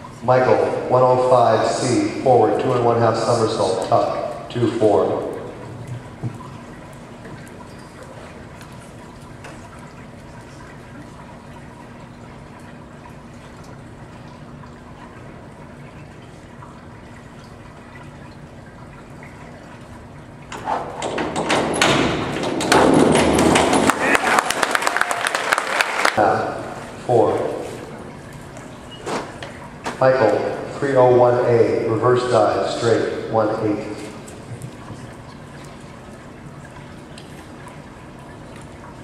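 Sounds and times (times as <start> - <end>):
faint steady hum: 0.0 - 39.0
crowd applauding and cheering: 23.8 - 26.2.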